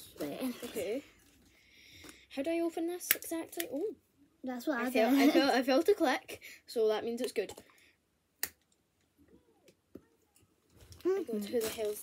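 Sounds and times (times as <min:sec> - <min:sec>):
faint handling sounds: 0:00.0 - 0:02.3, 0:09.0 - 0:12.0.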